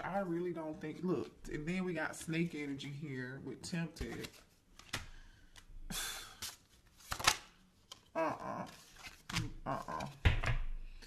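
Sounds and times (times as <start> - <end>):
cards rustling: 3.7 - 10.2
cards snapping while shuffled: 6.3 - 8.1.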